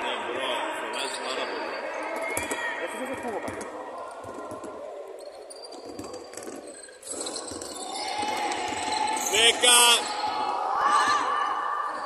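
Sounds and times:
basketball bouncing on wooden court: 2.2s - 4.9s, 5.5s - 9.2s
players' voices: 8.0s - 12.0s.

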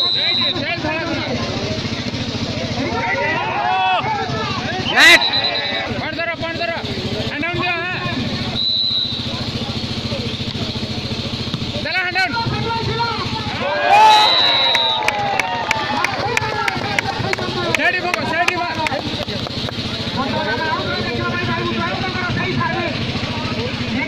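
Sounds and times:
referee's whistle blasts: 0.0s - 0.7s, 4.8s - 6.0s, 8.5s - 9.4s, 13.9s - 15.1s
spectators shouting: 2.6s - 6.1s, 12.0s - 19.0s.

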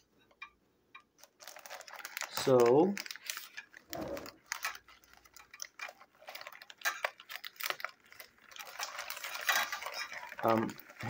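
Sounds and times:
plastic bag crinkling: 1.1s - 11.0s.

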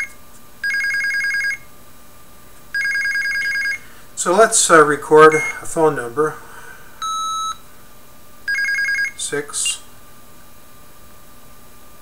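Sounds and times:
short steady beep: 5.3s - 5.7s, 7.0s - 7.6s.

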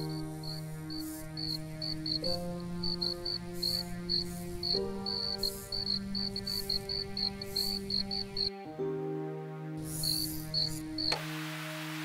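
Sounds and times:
crickets chirping: 0.0s - 8.5s, 9.8s - 11.2s
slow sustained music chords: 0.0s - 12.0s.

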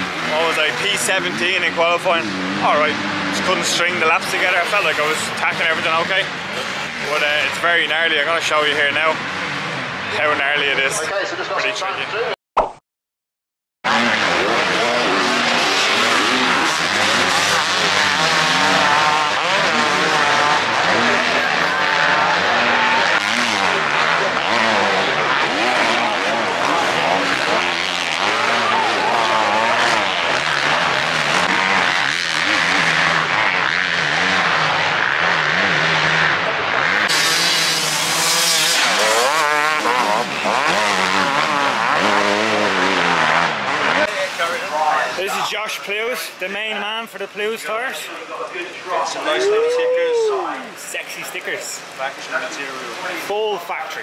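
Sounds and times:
motocross bike engines revving: 0.0s - 12.3s, 13.9s - 54.0s.

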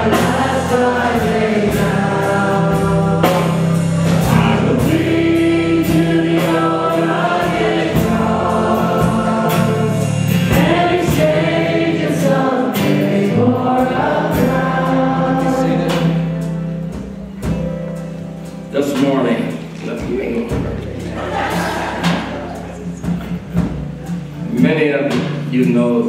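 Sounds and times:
voices singing held notes: 0.0s - 17.0s, 20.4s - 24.7s
drums steady beat: 0.0s - 25.9s
acoustic guitar: 0.0s - 26.0s.

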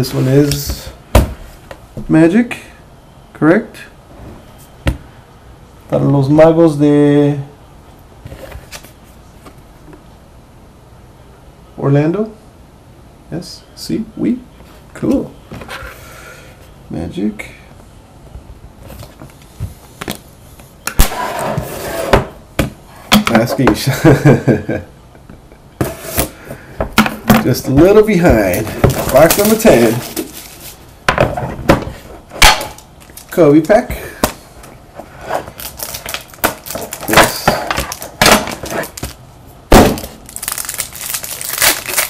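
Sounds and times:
box scraping across tabletop: 21.2s - 22.3s
packaging ripping: 28.5s - 30.8s, 35.5s - 39.2s, 39.8s - 42.0s
packaging crinkling: 28.5s - 30.9s, 33.0s - 33.7s, 35.5s - 39.2s, 39.8s - 42.0s.

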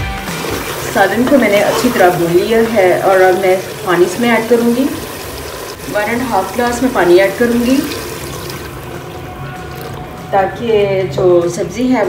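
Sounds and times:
water pouring into a pot: 0.2s - 10.2s.

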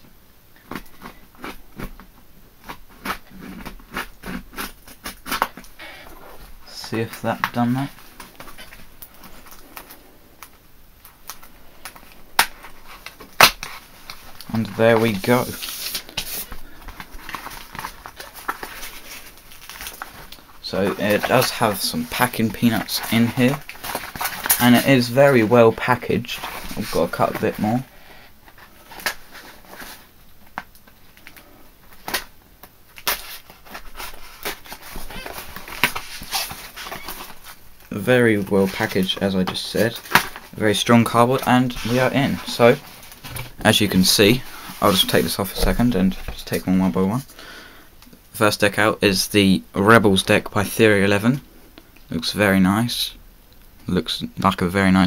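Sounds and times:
cardboard snapping: 11.2s - 14.2s
cardboard scrapes and rustles: 12.7s - 20.2s.

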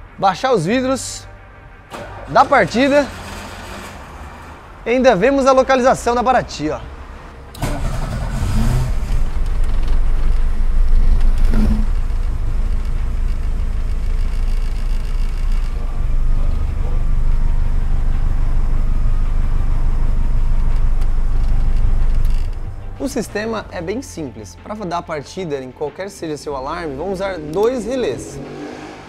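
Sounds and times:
car engine starting and idling: 0.0s - 24.6s, 25.5s - 29.0s.

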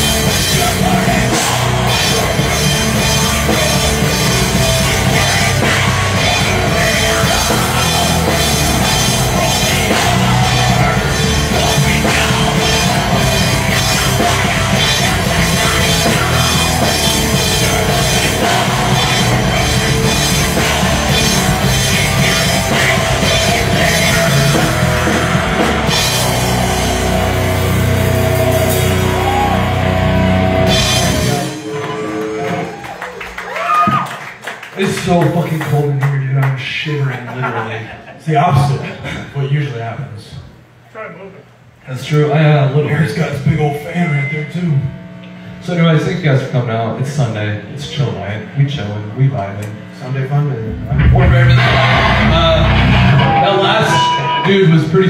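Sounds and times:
amplified electric guitar: 0.0s - 33.1s, 49.6s - 55.0s
live rock band playing: 0.0s - 33.4s, 50.7s - 55.0s
drum kit: 0.0s - 34.2s, 50.7s - 55.0s.

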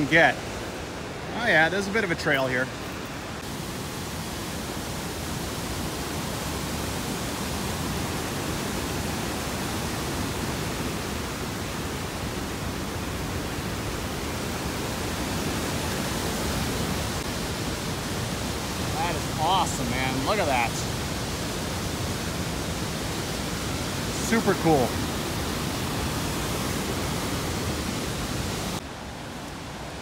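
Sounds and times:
waterfall rushing: 0.0s - 30.0s.

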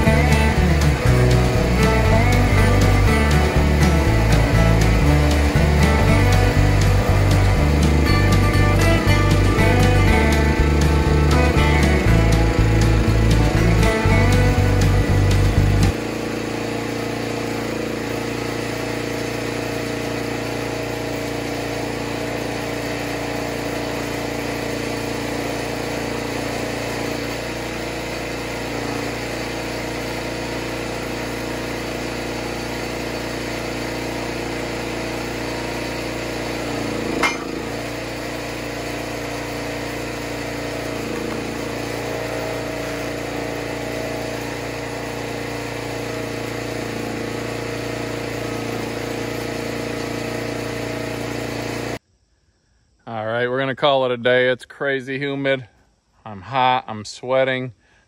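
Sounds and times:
log splitter engine running: 0.0s - 52.0s.

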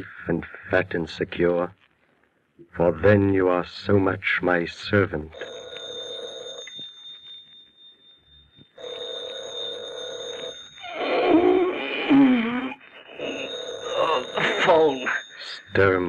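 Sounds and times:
telephone bell ringing: 5.3s - 16.0s
man groaning drowsily: 13.2s - 15.2s.

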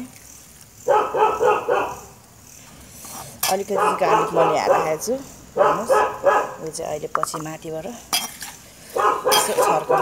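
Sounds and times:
dog barking: 0.8s - 2.2s, 3.7s - 6.6s, 8.9s - 10.0s.

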